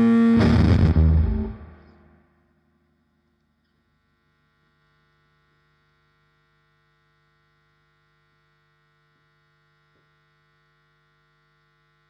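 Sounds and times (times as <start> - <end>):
faint electrical mains hum: 0.5 - 12.0.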